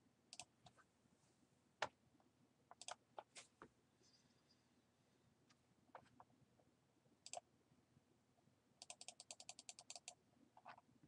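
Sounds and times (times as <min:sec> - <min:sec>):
computer mouse clicks: 0:00.3 - 0:00.8, 0:02.7 - 0:03.0, 0:07.2 - 0:07.4, 0:08.8 - 0:10.8.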